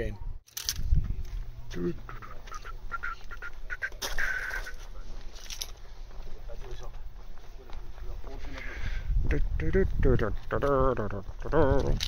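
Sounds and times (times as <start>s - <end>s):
birds chirping: 1.0s - 11.8s
harsh bird call: 1.8s - 4.9s.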